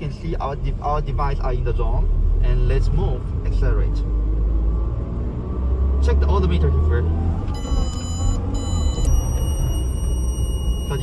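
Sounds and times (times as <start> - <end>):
car engine and road rumble: 0.0 - 11.0
high-pitched electronic tone: 7.5 - 11.0.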